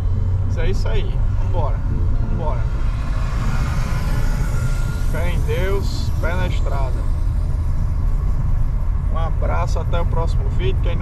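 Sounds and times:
car driving rumble: 0:00.0 - 0:11.0.

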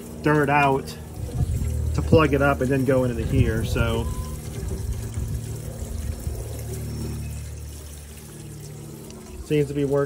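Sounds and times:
water pouring into a pipe: 0:00.0 - 0:10.0.

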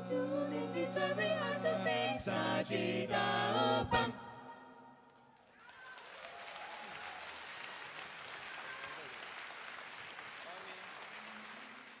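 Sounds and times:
audience applauding: 0:05.3 - 0:12.0.

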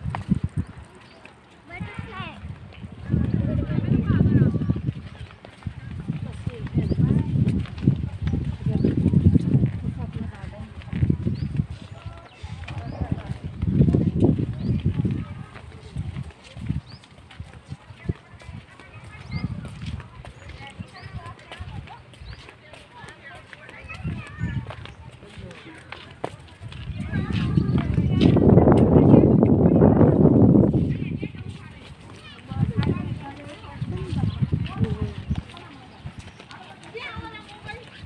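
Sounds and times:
footsteps on paved path: 0:00.0 - 0:38.0
people talking outdoors: 0:00.0 - 0:38.0
small birds chirping: 0:00.1 - 0:09.6, 0:10.7 - 0:26.1, 0:26.9 - 0:38.0.

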